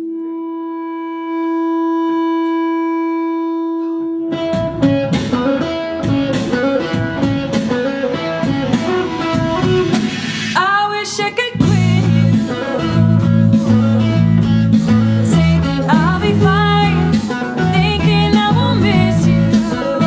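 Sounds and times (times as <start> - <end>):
pop-rock band playing: 4.2 - 20.0
sharp drum strikes: 4.6 - 10.9.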